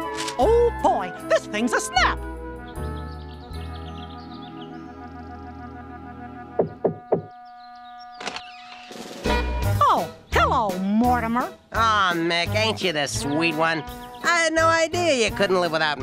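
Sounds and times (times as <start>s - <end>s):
light cartoon music: 0.0s - 16.0s.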